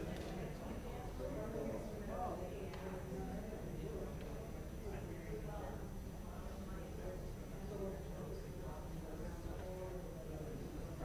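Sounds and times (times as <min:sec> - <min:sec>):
murmur of many people talking: 0:00.0 - 0:11.0.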